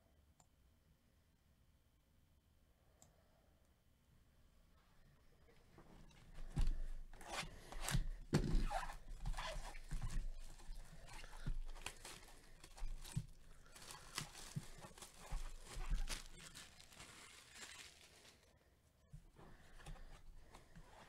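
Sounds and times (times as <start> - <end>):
plastic shrink-wrap crackling: 7.2 - 18.5.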